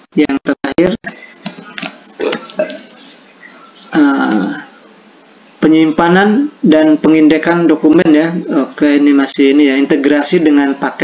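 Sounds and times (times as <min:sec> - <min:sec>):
man's throat noise: 0:01.0 - 0:03.1.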